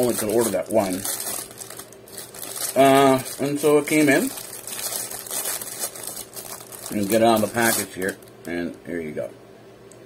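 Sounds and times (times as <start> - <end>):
packaging rustling and crinkling: 0.0 - 8.5.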